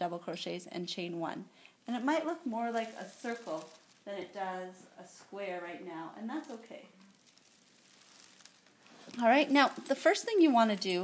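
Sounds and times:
faint rustles: 2.5 - 4.6, 6.4 - 11.0.

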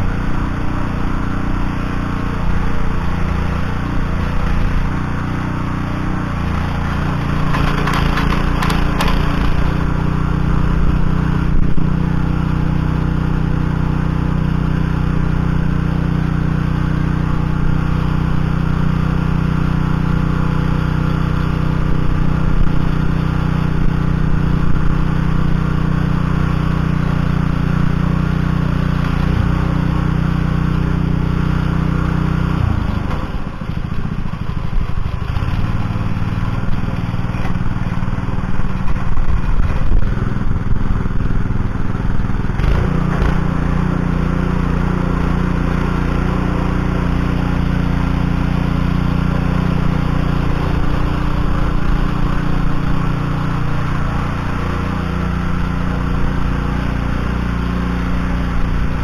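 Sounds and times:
petrol engine running under load: 0.0 - 59.0
tiller tines working soil: 0.0 - 59.0
brief clatter: 7.4 - 9.7.

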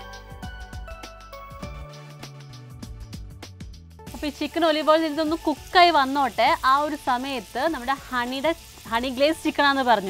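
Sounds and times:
chicken sizzling in a pan: 4.1 - 10.0
woman speaking: 4.1 - 10.0.

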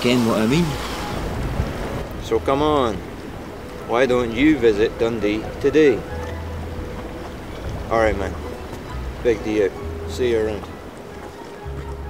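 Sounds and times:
faint background music tone: 0.0 - 12.0
wind rumble on microphone: 0.0 - 12.0.

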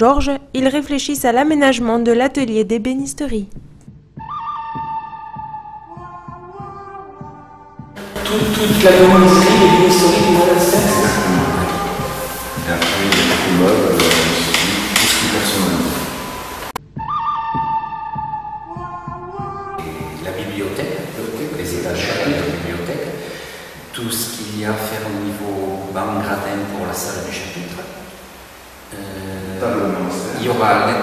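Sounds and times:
calm background music: 0.0 - 28.0
men talking indistinctly: 8.0 - 16.2, 19.8 - 28.0, 28.9 - 31.0
man's drawn-out hesitation sound: 8.0 - 16.3, 19.8 - 28.0
man speaking: 8.0 - 16.4, 19.8 - 28.0, 28.9 - 31.0
steady hiss: 8.0 - 16.8, 19.8 - 31.0.

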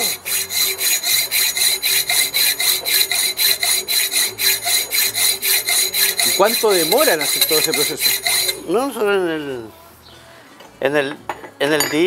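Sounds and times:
hacksaw cutting metal: 0.0 - 8.7.

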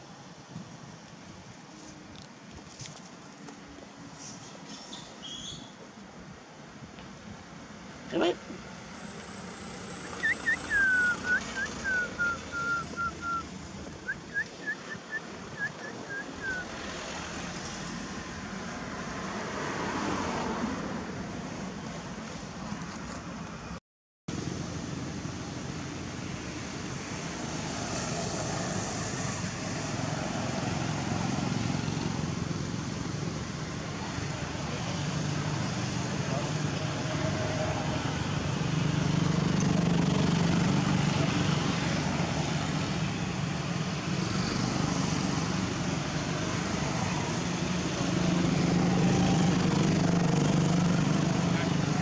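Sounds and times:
whistled notes sliding down: 9.9 - 13.4, 14.0 - 16.7.

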